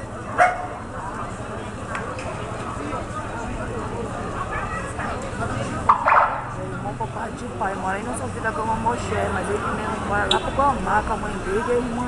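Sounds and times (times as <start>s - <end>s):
murmur of crowd voices: 0.0s - 12.0s
dog barking: 0.4s - 0.8s.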